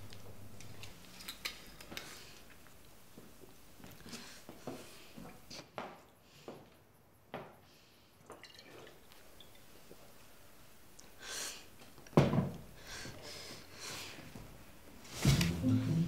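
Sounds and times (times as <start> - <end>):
liquid sloshing in glass bottle: 8.3 - 9.7.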